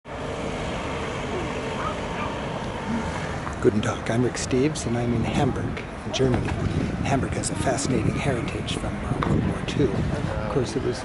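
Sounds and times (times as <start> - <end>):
road traffic: 0.0 - 11.0.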